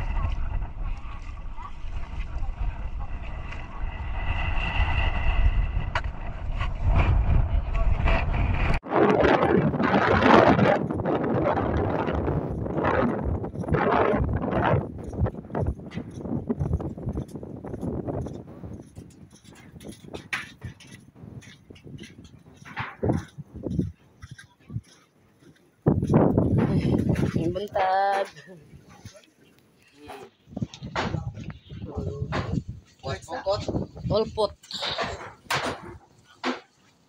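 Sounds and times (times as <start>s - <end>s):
wind rumbling on microphone: 0.0s - 29.3s, 30.0s - 36.3s
footsteps: 10.4s - 37.0s.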